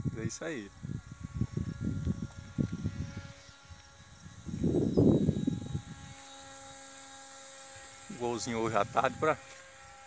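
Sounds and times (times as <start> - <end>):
wind buffeting microphone: 0.0 - 6.3.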